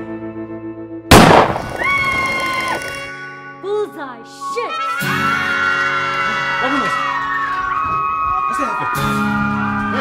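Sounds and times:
revolver gunshot: 0:01.1 - 0:02.2.

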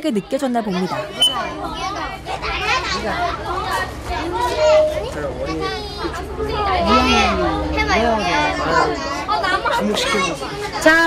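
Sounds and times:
young children chattering: 0:00.0 - 0:11.0.

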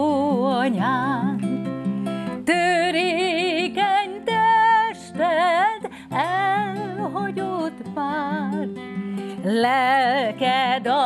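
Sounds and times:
woman singing with vibrato: 0:00.0 - 0:01.7, 0:02.4 - 0:11.0
acoustic guitar: 0:00.0 - 0:11.0.

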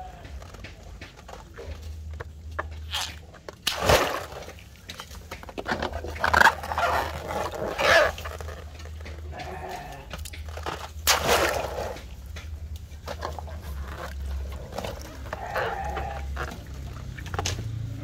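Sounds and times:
water sloshing and splashing in a tub: 0:00.0 - 0:18.0
farm animal calls: 0:06.8 - 0:10.3, 0:13.2 - 0:17.1.

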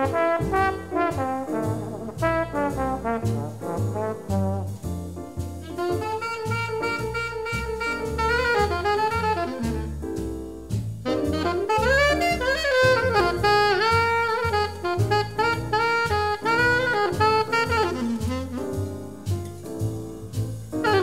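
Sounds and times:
drums: 0:00.0 - 0:21.0
jazz ensemble with horns: 0:00.0 - 0:21.0
walking string bass: 0:00.0 - 0:21.0.

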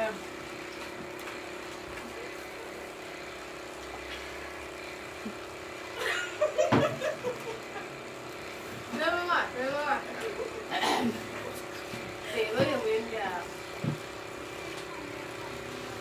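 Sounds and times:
low mechanical hum: 0:00.0 - 0:16.0
voices and laughter: 0:06.0 - 0:08.0, 0:10.0 - 0:11.6.

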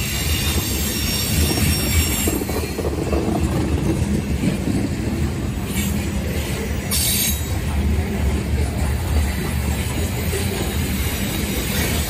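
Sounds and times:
train wheels rumbling on rail: 0:00.0 - 0:12.0.

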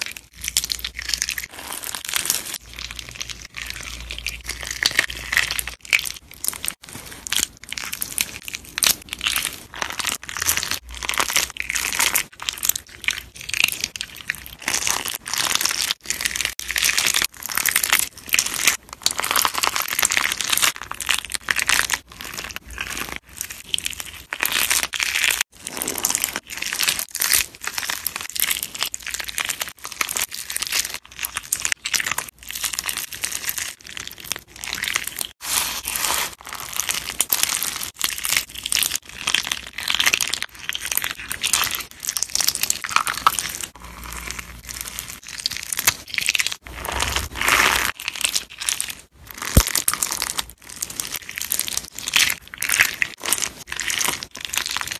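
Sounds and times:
crunchy slime crunching: 0:00.0 - 0:54.9.

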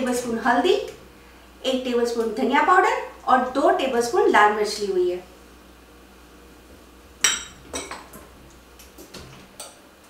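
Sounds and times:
kitchenware clinking on frying pan: 0:07.2 - 0:08.2.

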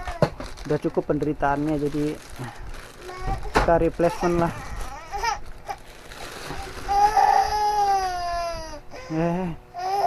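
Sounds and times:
small child crying: 0:03.0 - 0:05.8, 0:06.4 - 0:10.0.

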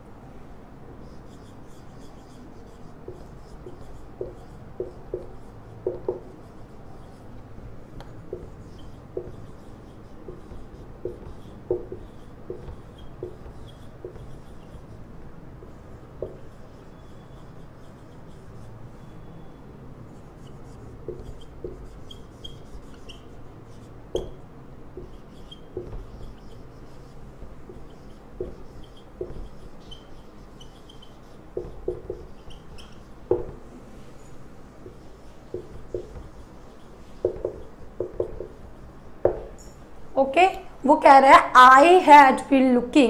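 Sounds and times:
marker tip squeaking on board: 0:01.0 - 0:07.3, 0:08.0 - 0:15.0, 0:15.6 - 0:39.8
marker scratching on whiteboard: 0:01.0 - 0:39.8
soft knocks: 0:10.2 - 0:14.4, 0:25.0 - 0:26.3, 0:27.4 - 0:29.7, 0:31.5 - 0:33.7, 0:34.8 - 0:36.5, 0:37.1 - 0:38.6, 0:39.2 - 0:39.6.

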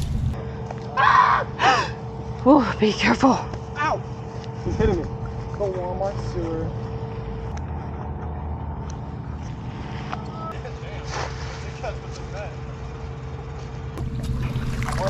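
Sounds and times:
low engine hum: 0:00.0 - 0:01.0, 0:02.0 - 0:15.0
net splashing into puddle: 0:14.2 - 0:15.0.

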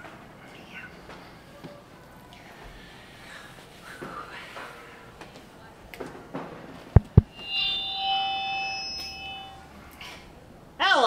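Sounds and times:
knocks on microphone: 0:06.4 - 0:07.3
ringing tone: 0:07.2 - 0:09.8.

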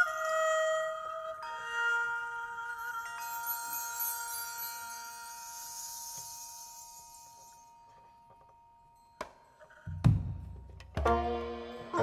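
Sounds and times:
metal chimes ringing: 0:01.7 - 0:10.7.

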